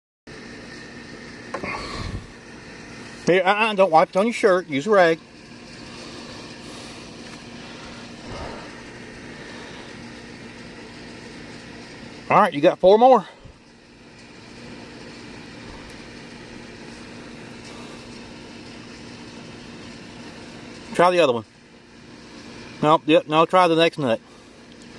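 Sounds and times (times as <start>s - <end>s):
steady mechanical hum: 0.3s - 24.9s.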